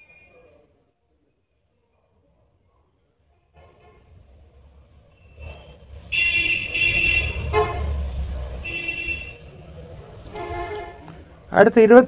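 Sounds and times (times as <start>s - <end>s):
low traffic rumble: 0.0s - 12.0s
vehicle horns honking: 3.6s - 4.2s, 5.1s - 9.5s, 10.3s - 11.2s.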